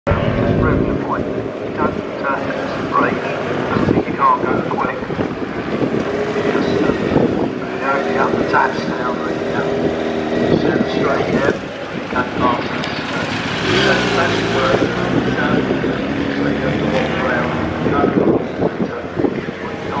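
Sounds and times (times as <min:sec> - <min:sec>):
motorcycle engine riding away: 0:05.3 - 0:18.0.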